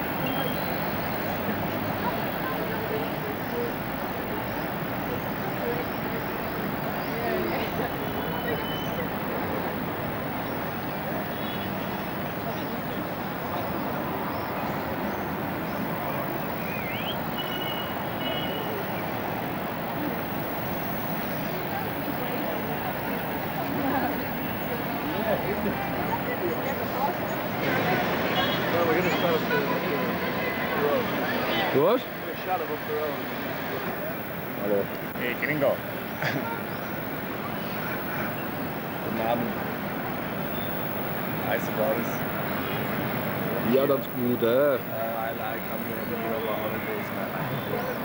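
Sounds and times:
murmur of voices: 0.0 - 48.0
street noise: 0.0 - 48.0.

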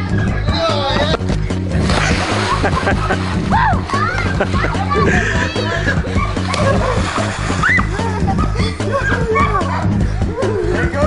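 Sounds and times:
background music: 0.0 - 11.0
voices and laughter: 0.0 - 11.0
water splashing in a pool: 1.7 - 5.1, 5.8 - 8.6.

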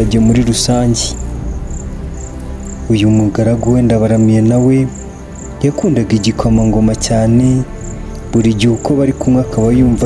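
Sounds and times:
background music drone: 0.0 - 10.0
cricket chirping: 0.0 - 10.0.

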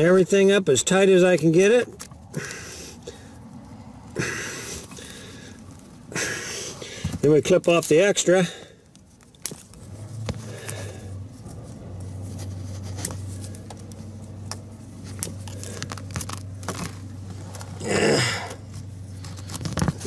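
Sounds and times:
steady low hum: 8.0 - 20.0
small clicks and scrapes: 8.8 - 17.8, 18.7 - 20.0.

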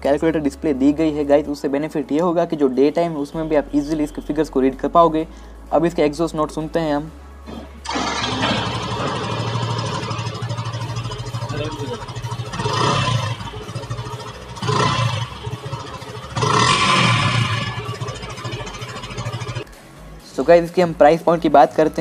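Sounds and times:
motorcycle engine starting and idling: 7.5 - 19.7.

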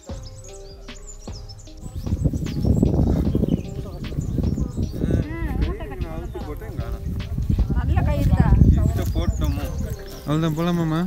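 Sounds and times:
steady low rumbling: 0.0 - 11.0
people talking: 1.8 - 11.0.

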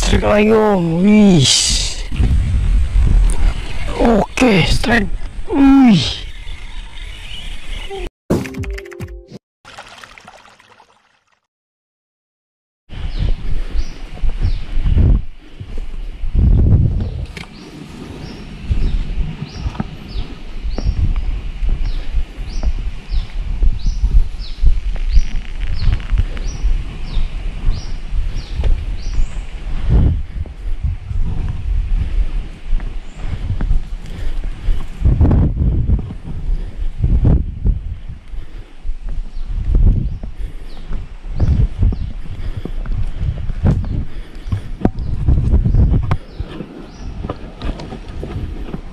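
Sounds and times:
low rumbling on microphone: 1.1 - 4.1, 12.9 - 48.9
bird calling: 5.4 - 8.1.

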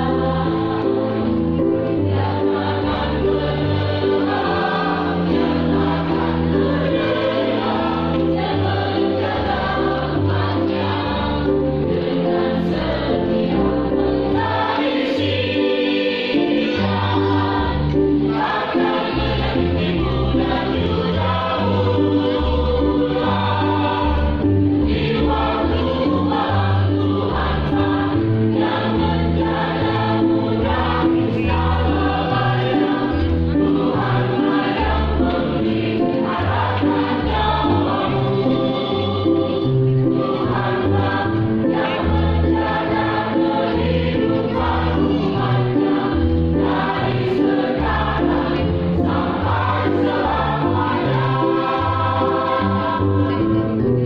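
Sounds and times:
mixed choir singing gospel: 0.0 - 54.0.

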